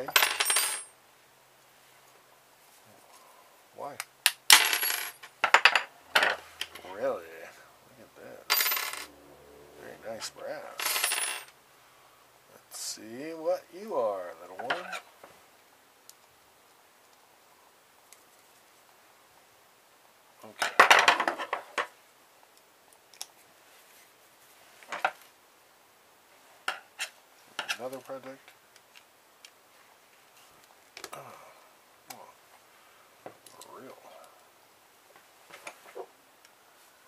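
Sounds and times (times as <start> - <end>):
metal parts clattering on wood: 10.8 - 11.5
metal tools clinking on wood: 10.8 - 11.5.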